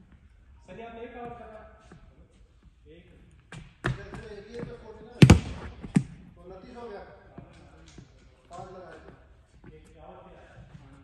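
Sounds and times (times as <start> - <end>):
ball knocking in echoing hall: 5.1 - 6.4.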